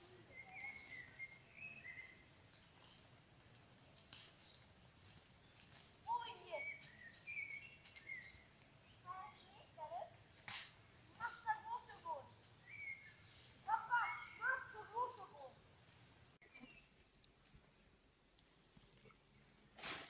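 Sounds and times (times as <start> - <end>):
distant children's voices: 0.0 - 2.3, 8.4 - 10.2, 11.1 - 15.6
woodland ambience: 0.0 - 20.0
brief rustle: 18.3 - 20.0.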